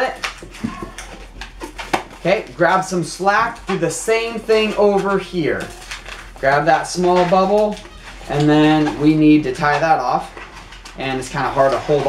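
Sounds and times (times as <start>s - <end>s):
rubbery balloon squeaks: 0.0s - 12.0s.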